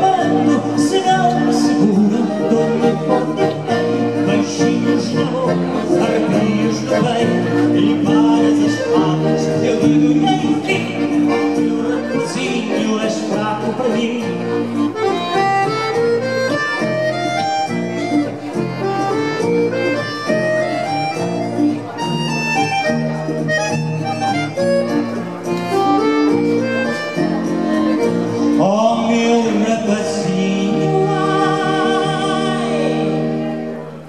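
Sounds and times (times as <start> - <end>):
person singing: 0.0 - 14.8, 28.1 - 33.5
accordion melody: 0.0 - 34.0
guitar and bass accompaniment: 0.0 - 34.0.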